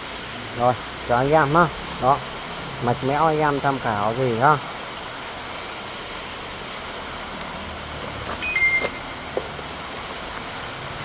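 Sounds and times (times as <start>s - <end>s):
steady background noise: 0.0s - 11.0s
brief high tone: 8.4s - 9.2s.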